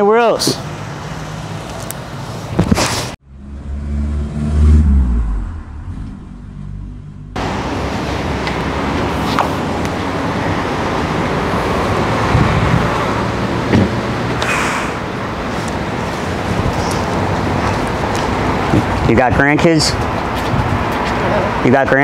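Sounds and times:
outdoor traffic noise: 0.0s - 22.0s
car engine humming: 0.7s - 19.1s.

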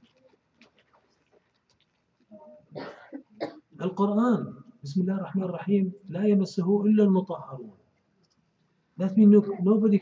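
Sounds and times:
man speaking: 3.8s - 7.7s, 9.0s - 10.0s.

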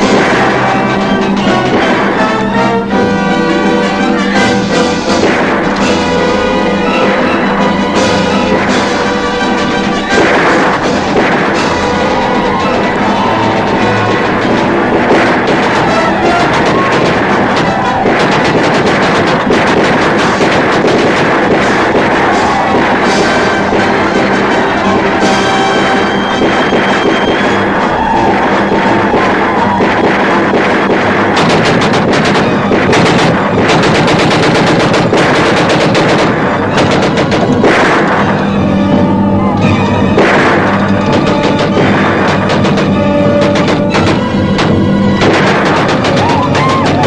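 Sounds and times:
film score music: 0.0s - 47.0s
rapid gatling gunfire: 0.0s - 47.0s.

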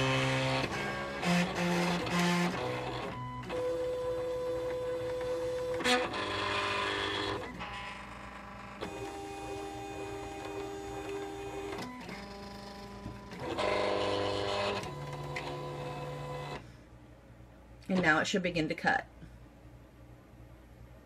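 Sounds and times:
cutting machine motors whining: 0.0s - 16.6s.

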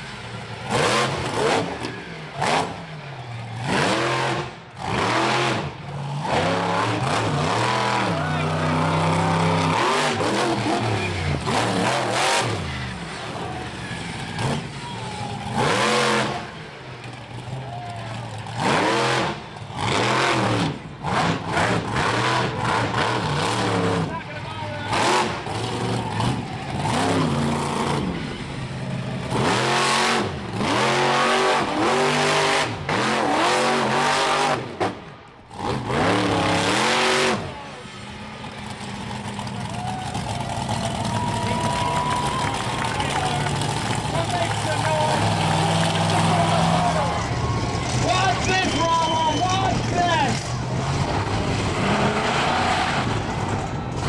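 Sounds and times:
monster truck engine revving: 0.0s - 54.0s.

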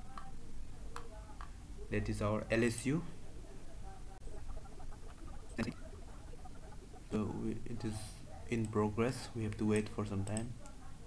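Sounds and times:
faint steady hum: 0.0s - 11.0s
computer mouse click: 0.1s - 0.3s, 9.5s - 10.8s
indistinct background sounds: 1.2s - 10.0s.

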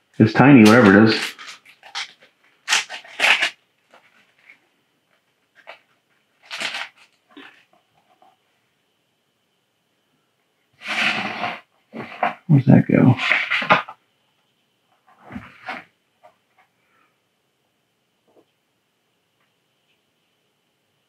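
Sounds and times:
plastic zip bag rustling: 0.6s - 4.6s, 5.5s - 7.7s.

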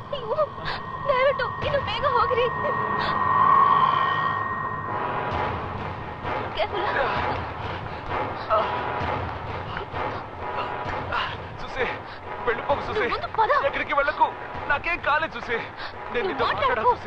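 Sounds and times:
steady high tone: 0.0s - 7.6s.

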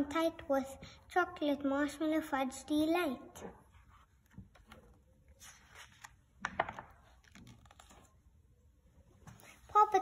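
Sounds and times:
book pages clicking and rustling: 4.2s - 8.2s.

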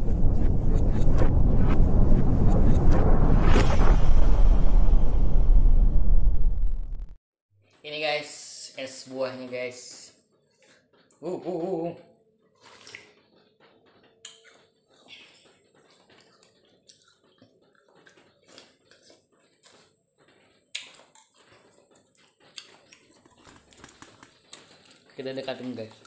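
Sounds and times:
slurping and chewing: 12.6s - 13.5s, 14.2s - 25.2s.

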